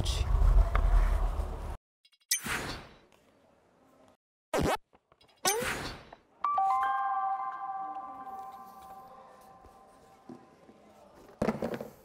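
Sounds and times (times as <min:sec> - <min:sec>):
chime-like ringing tone: 0:06.5 - 0:10.0.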